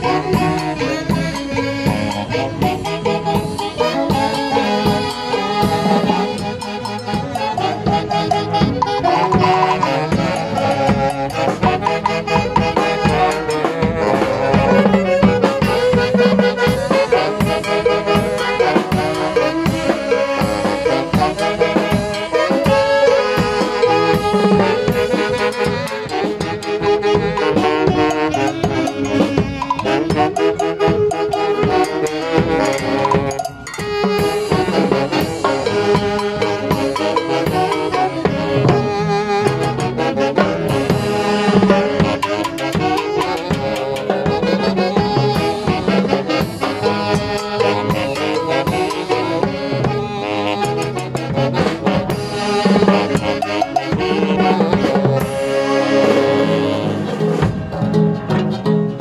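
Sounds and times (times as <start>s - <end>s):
drum kit and timbales beat: 0.0s - 59.0s
saxophones playing melody: 0.0s - 59.0s.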